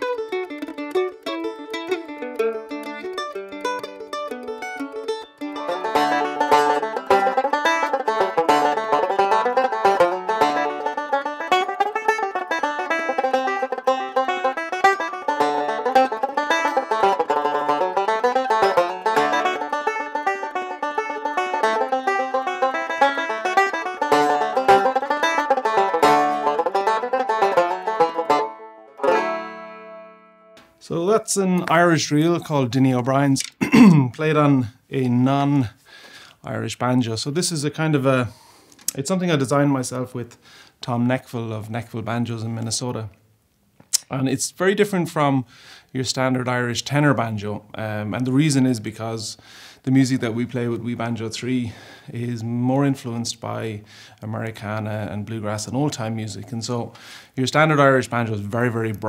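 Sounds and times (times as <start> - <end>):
banjo picking a fast reel: 0.0 - 30.0
mandolin picking a jig: 0.0 - 30.8.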